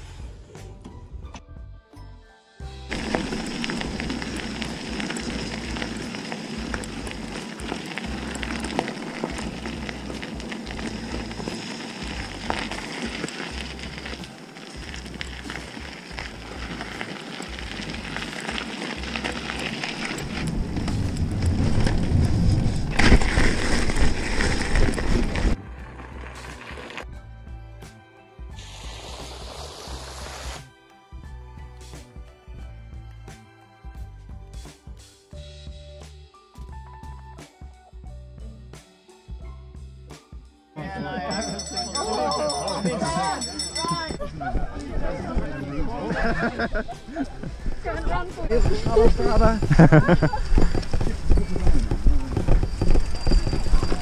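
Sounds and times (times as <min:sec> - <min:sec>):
background music: 0:00.0 - 0:50.5
bike tyres rolling on gravel: 0:02.8 - 0:27.1, 0:41.4 - 0:54.0.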